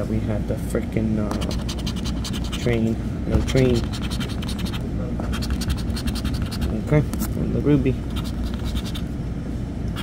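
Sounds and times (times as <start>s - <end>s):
scratching lottery ticket: 1.3s - 2.8s, 3.5s - 6.8s, 8.1s - 9.1s.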